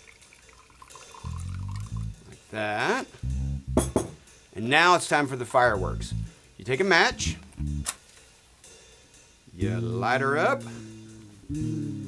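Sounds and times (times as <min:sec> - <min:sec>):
liquid trickling into a glass: 0:00.0 - 0:02.2
low steady note: 0:01.3 - 0:02.4, 0:03.2 - 0:04.0, 0:05.6 - 0:07.9, 0:09.6 - 0:12.0.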